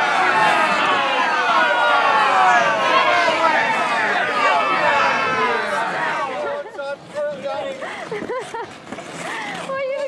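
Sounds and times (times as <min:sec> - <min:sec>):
people calling out: 0:00.0 - 0:06.7.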